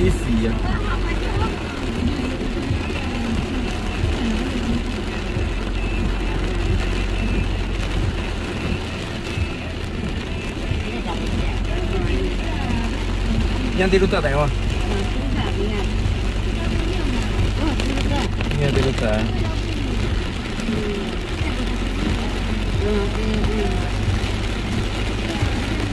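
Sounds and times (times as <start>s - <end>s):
car engine rumble inside cabin: 0.0s - 25.9s.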